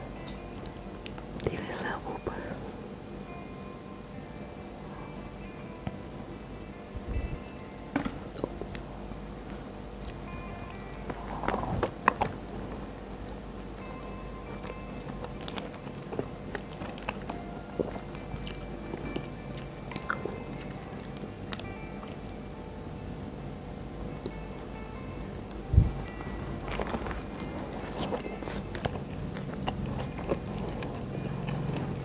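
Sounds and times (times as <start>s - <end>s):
soft background music: 0.0s - 32.0s
burger being bitten and chewed: 14.5s - 22.7s, 25.8s - 32.0s.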